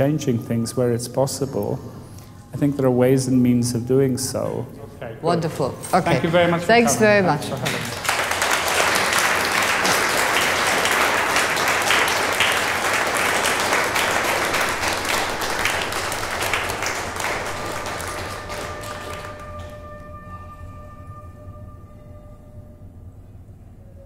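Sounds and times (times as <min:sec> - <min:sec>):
audience applauding: 0:06.1 - 0:20.4.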